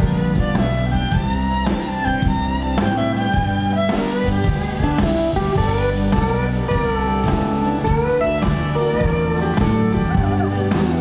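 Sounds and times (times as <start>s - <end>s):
lead line with bending notes: 0.0s - 11.0s
live country band playing: 0.0s - 11.0s.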